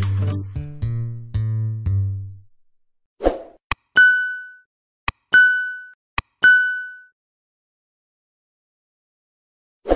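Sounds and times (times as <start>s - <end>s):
bright ringing ding: 4.0s - 4.6s, 5.3s - 7.1s.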